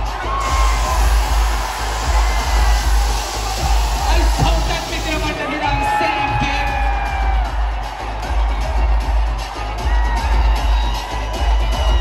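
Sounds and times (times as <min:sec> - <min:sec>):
stage jets hissing: 0:00.0 - 0:06.8
hip-hop music with heavy bass: 0:00.0 - 0:12.0.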